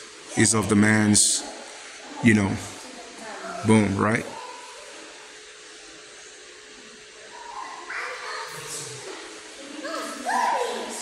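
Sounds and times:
faint hum: 0:00.0 - 0:11.0
faint voices: 0:00.2 - 0:11.0.

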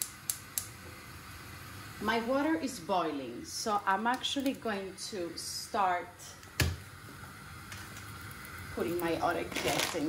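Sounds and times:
gas igniter clicking: 0:00.0 - 0:00.8
gas burner hissing: 0:00.0 - 0:10.0.

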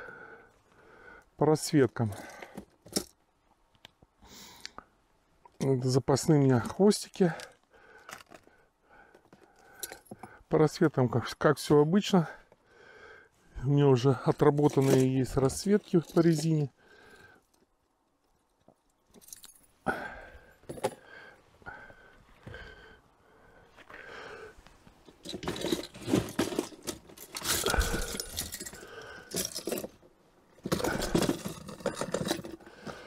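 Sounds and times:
rustling and scraping of lures: 0:06.6 - 0:10.4, 0:14.2 - 0:19.8, 0:23.7 - 0:33.0
metal hooks jingling: 0:14.4 - 0:16.7, 0:19.1 - 0:19.8, 0:25.2 - 0:30.0, 0:30.6 - 0:32.6.

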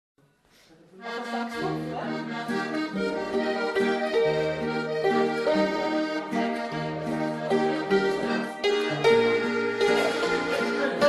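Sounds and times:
button accordion playing waltz: 0:01.0 - 0:11.0
guitar accompaniment: 0:01.2 - 0:11.0
hammered dulcimer: 0:01.6 - 0:11.0.

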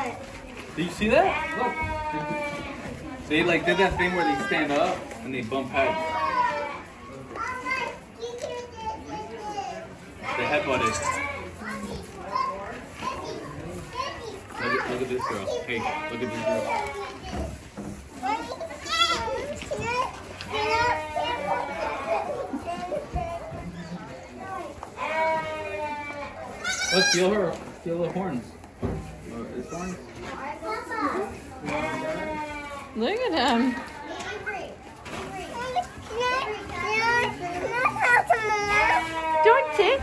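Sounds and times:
young goats bleating: 0:01.2 - 0:03.0, 0:05.7 - 0:06.8, 0:10.2 - 0:11.6, 0:15.7 - 0:17.2, 0:20.5 - 0:22.5, 0:25.0 - 0:27.4, 0:31.6 - 0:33.0, 0:38.3 - 0:40.0.

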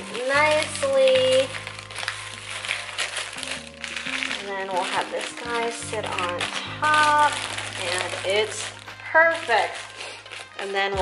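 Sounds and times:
background music: 0:00.0 - 0:11.0
plastic and tissue paper crinkling: 0:00.0 - 0:11.0.

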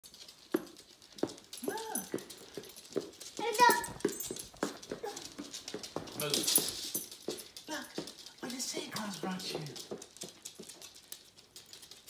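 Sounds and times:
small dog whining: 0:01.6 - 0:02.2, 0:04.9 - 0:05.4.

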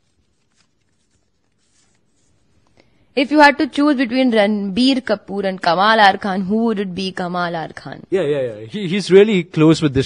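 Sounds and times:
paper slip unfolding: 0:00.0 - 0:02.8.

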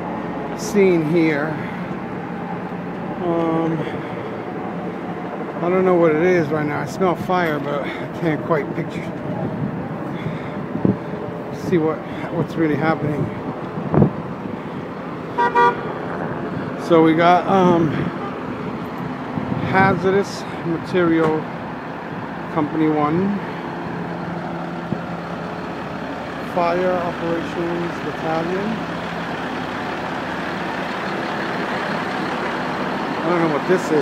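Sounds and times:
fire truck engines idling: 0:00.0 - 0:34.0
street traffic hum: 0:00.0 - 0:34.0
vehicle horn toot: 0:15.4 - 0:15.9.

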